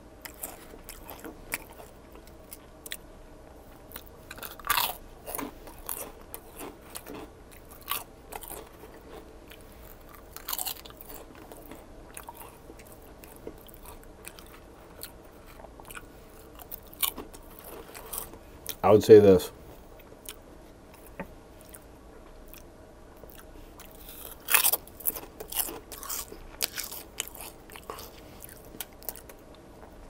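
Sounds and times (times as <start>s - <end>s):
person crunching potato chip: 0.2s - 3.0s, 3.8s - 18.8s, 23.2s - 29.9s
soft chewing clicks: 0.2s - 18.8s, 19.8s - 30.0s.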